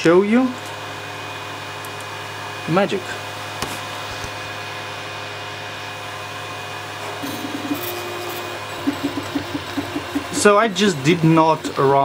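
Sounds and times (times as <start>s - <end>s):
cooling fans whirring: 0.0s - 12.0s
stepper motors buzzing: 7.0s - 12.0s.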